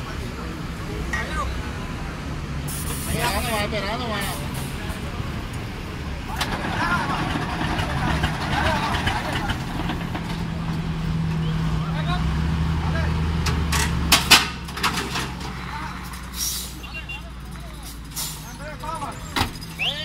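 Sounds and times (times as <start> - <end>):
diesel truck engine running: 0.0 - 20.0
air hissing: 2.7 - 3.2.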